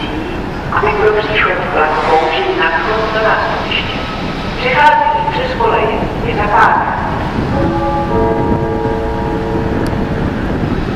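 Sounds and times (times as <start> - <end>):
diesel locomotive rumble: 0.0 - 10.9
steady held tones: 7.4 - 10.9.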